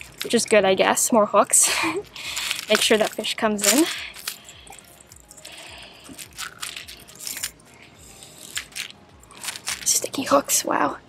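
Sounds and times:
pliers clicking on metal hooks: 0.0s - 10.4s.

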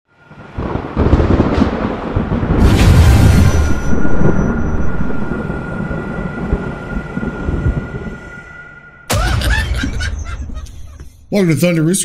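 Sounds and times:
deep rumble: 0.6s - 11.1s.

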